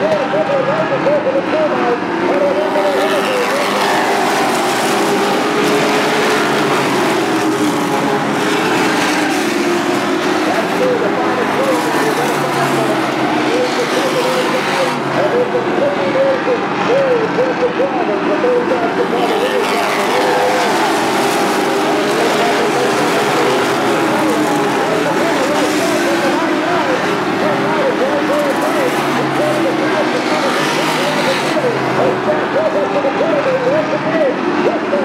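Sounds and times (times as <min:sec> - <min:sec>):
race truck engines: 0:00.0 - 0:35.0.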